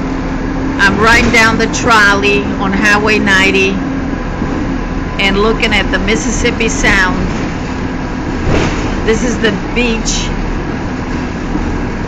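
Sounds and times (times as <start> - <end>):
trolley engine and road noise: 0.0 - 12.0.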